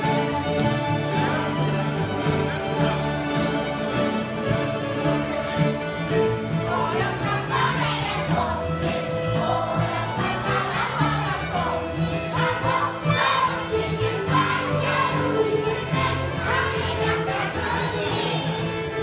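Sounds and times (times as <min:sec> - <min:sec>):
folk fiddle music: 0:00.0 - 0:19.0.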